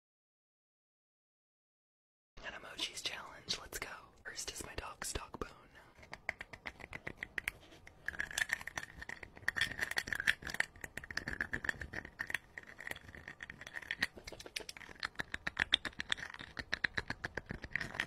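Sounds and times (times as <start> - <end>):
person whispering: 2.4 - 6.1
crunching and mouth clicks: 5.8 - 18.0.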